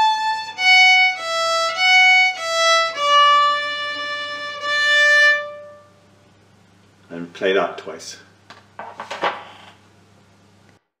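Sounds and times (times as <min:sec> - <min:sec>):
faint room hum: 0:00.0 - 0:11.0.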